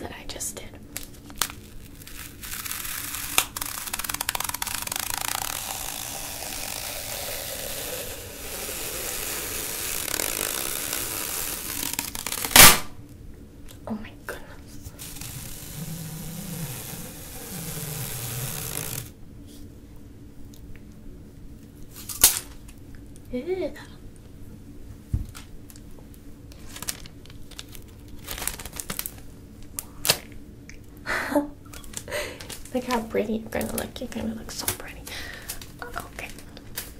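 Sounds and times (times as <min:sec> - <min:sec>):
duct tape ripping: 0:00.9 - 0:13.0, 0:14.9 - 0:19.2, 0:21.9 - 0:22.6, 0:26.5 - 0:29.2, 0:29.8 - 0:30.4
tape sharp crack: 0:01.0 - 0:13.1, 0:15.0 - 0:19.1.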